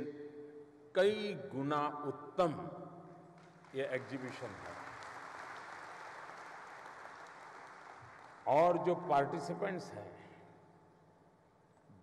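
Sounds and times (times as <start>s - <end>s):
audience applauding: 3.6s - 8.5s.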